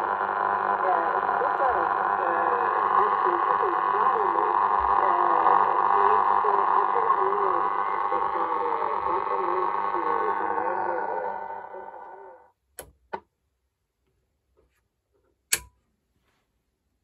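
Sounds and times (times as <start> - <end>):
noisy muffled radio reception: 0.0 - 12.5.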